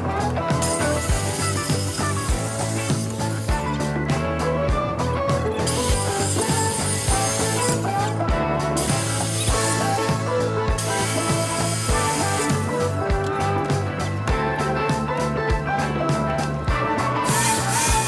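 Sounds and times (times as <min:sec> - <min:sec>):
handheld power tool running: 0:00.0 - 0:04.5, 0:05.3 - 0:14.2, 0:17.2 - 0:18.0
background music with steady beat: 0:00.0 - 0:18.0.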